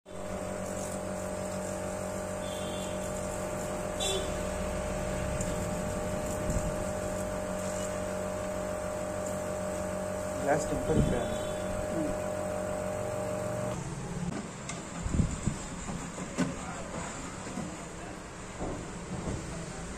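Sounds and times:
machine electrical hum: 0:00.1 - 0:15.9.

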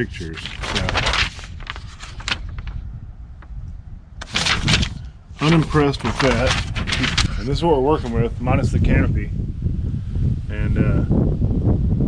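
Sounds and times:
paper rustling and crackling: 0:00.0 - 0:02.8, 0:04.2 - 0:08.3
low microphone rumble: 0:00.0 - 0:12.0.

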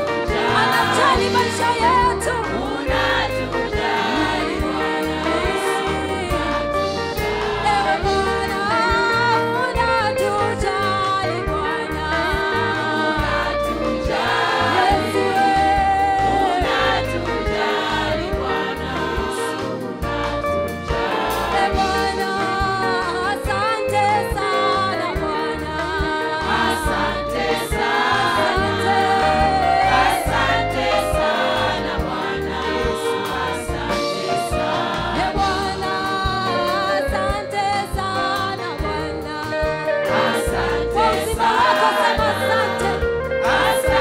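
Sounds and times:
choir singing: 0:00.0 - 0:44.0
electric bass guitar: 0:00.0 - 0:44.0
woman singing into a microphone: 0:00.3 - 0:03.7, 0:07.7 - 0:19.4, 0:21.6 - 0:30.4, 0:35.2 - 0:44.0.

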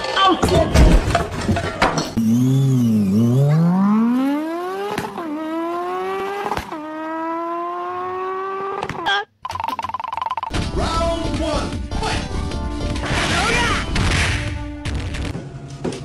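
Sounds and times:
car engine accelerating: 0:02.2 - 0:09.0.

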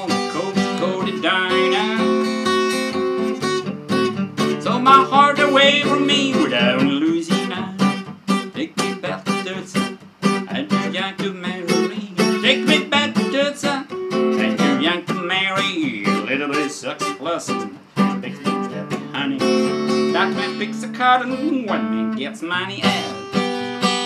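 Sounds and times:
man singing: 0:00.0 - 0:02.8, 0:04.5 - 0:23.7
acoustic guitar strumming: 0:00.0 - 0:24.0.

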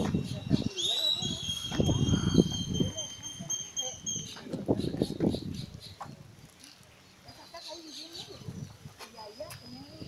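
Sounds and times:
people talking indistinctly: 0:00.0 - 0:10.0.

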